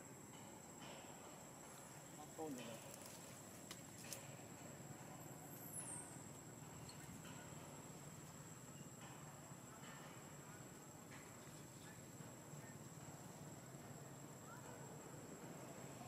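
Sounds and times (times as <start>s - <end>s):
thin high-pitched whine: 0.0s - 16.0s.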